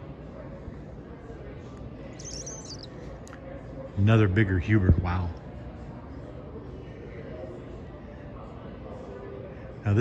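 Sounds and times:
high bird-like chirping: 0:02.2 - 0:03.0.

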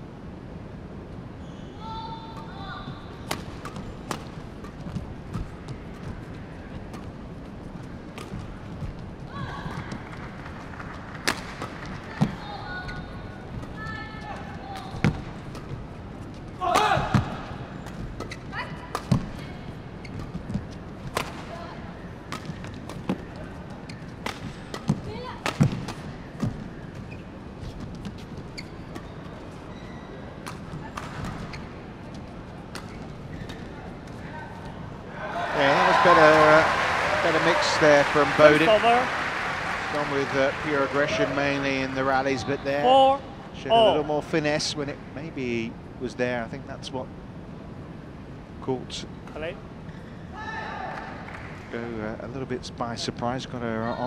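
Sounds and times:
shoe squeaks: 0:01.4 - 0:04.0, 0:17.8 - 0:20.9, 0:26.2 - 0:31.8, 0:32.8 - 0:33.8
racket striking shuttlecock: 0:11.2 - 0:12.4, 0:16.6 - 0:19.4, 0:24.2 - 0:26.5
person calling out: 0:42.8 - 0:44.1.

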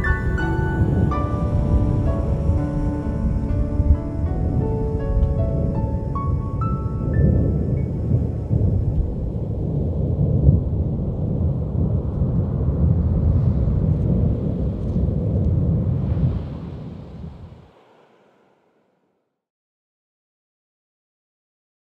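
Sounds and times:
closing music: 0:00.0 - 0:09.6
deep thunder-like rumble: 0:00.0 - 0:19.1.

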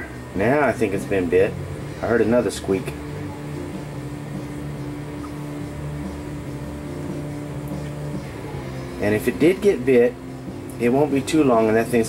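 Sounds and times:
held low tones: 0:00.0 - 0:11.8
steady low hum: 0:00.0 - 0:12.0.

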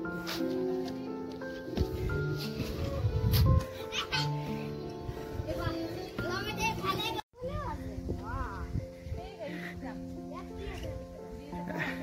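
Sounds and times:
background music: 0:00.0 - 0:12.0
children's playful calls: 0:03.7 - 0:04.9.

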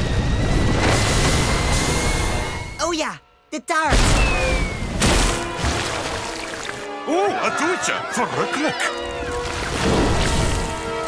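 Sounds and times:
music: 0:00.2 - 0:11.0
falling whistle: 0:04.1 - 0:05.0.

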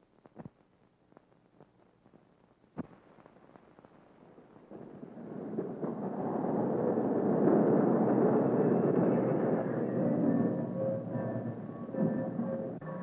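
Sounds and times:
steam locomotive rumbling: 0:04.8 - 0:13.0.

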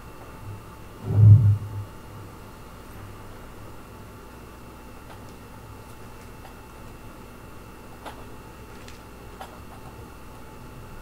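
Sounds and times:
low steady hum: 0:00.0 - 0:11.0
deep low boom: 0:01.0 - 0:02.0.

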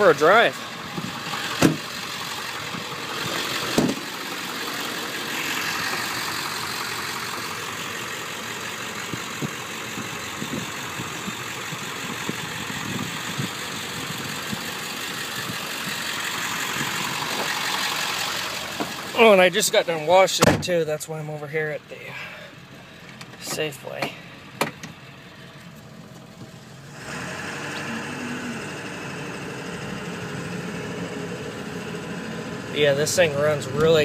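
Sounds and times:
diesel engine idling: 0:00.0 - 0:34.0.

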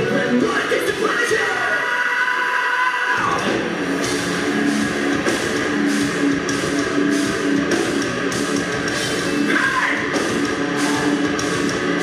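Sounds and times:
live heavy metal band: 0:00.0 - 0:12.0.

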